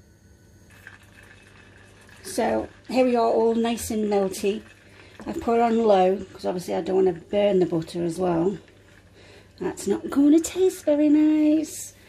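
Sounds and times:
butter bubbling in a saucepan: 0.6 - 12.0.

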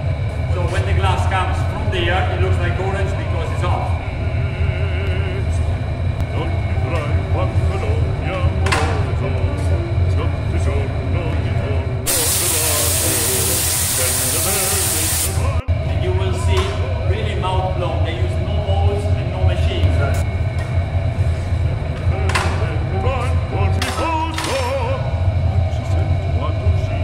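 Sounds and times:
furnace roaring: 0.0 - 27.0
murmuring voices: 1.6 - 12.3
loud hiss: 12.1 - 15.6.

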